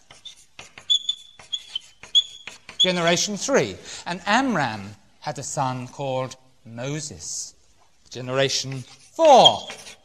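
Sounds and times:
marker pen scratching: 0:00.0 - 0:03.1, 0:08.6 - 0:10.0
marker pen squeaks: 0:00.0 - 0:03.1, 0:09.2 - 0:10.0.

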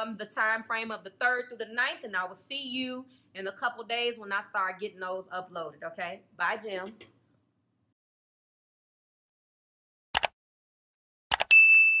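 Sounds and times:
bright bell ding: 0:11.5 - 0:12.0.

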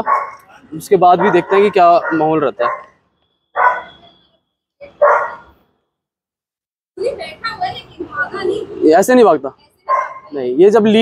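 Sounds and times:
dog barking: 0:00.0 - 0:00.5, 0:01.1 - 0:03.0, 0:03.6 - 0:04.0, 0:04.9 - 0:05.5, 0:09.9 - 0:10.4.

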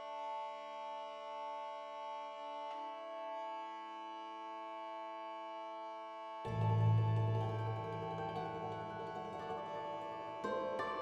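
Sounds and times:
soft held chord: 0:00.0 - 0:11.0.

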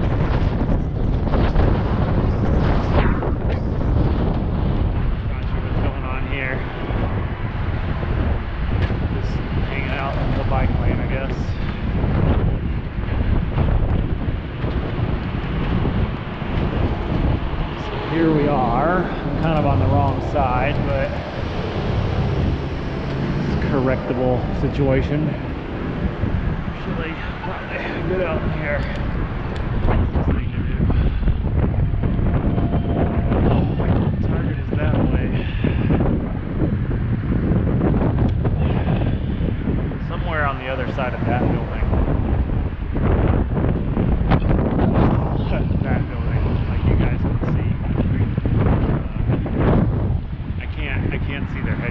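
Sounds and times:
wind rumble on microphone: 0:00.0 - 0:51.9
street traffic noise: 0:03.5 - 0:51.9.

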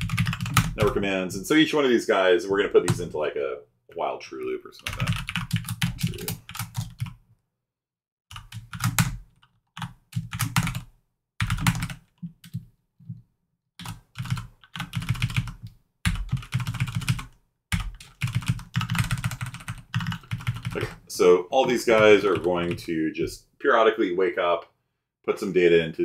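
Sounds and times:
typing on computer keyboard: 0:00.0 - 0:01.0, 0:04.8 - 0:07.2, 0:08.3 - 0:12.6, 0:13.8 - 0:20.8.

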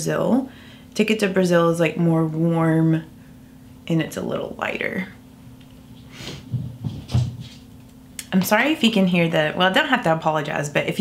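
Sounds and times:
muffled bumps: 0:05.9 - 0:07.7.

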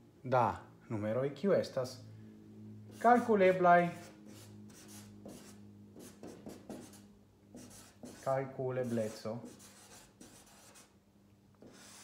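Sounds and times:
marker pen writing on paper: 0:04.0 - 0:11.0, 0:11.6 - 0:12.0.

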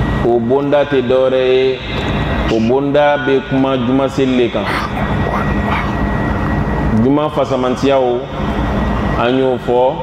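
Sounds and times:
steady mechanical hum: 0:00.0 - 0:10.0.

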